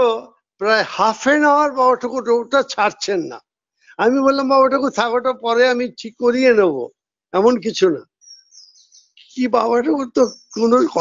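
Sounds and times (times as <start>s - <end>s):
man's voice: 0.0s - 3.4s, 4.0s - 8.0s, 9.2s - 11.0s
small bird chirping: 8.0s - 11.0s.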